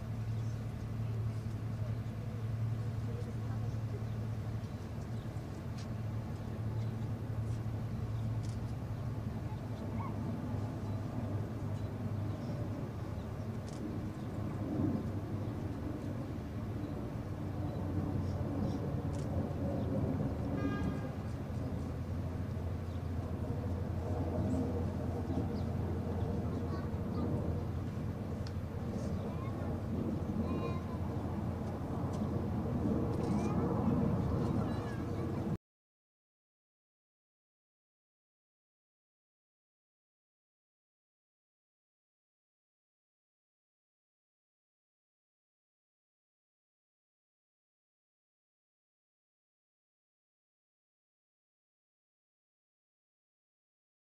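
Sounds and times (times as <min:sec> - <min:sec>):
crowd rustles and murmurs: 0:00.0 - 0:35.6
steady low hum: 0:00.0 - 0:35.6.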